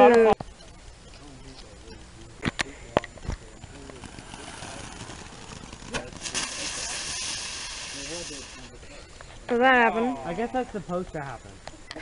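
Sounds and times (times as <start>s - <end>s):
firework crack: 2.3s - 8.8s
sharp pops: 2.4s - 8.7s
firework sparks hissing: 3.2s - 8.9s.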